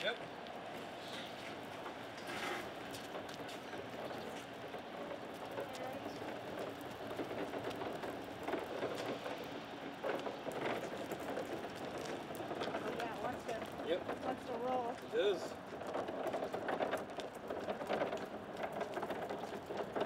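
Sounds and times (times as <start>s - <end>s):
casters rolling over concrete: 0.0s - 20.0s.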